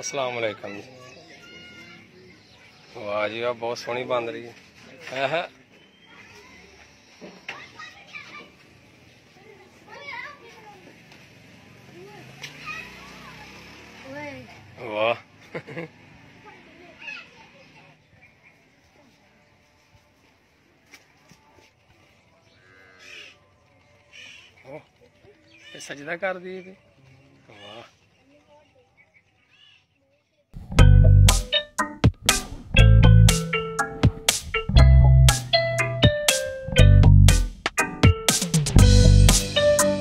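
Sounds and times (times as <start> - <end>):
children calling out: 0.5 - 3.0, 6.0 - 8.6, 12.0 - 14.0, 16.3 - 18.0
people laughing: 15.4 - 16.2.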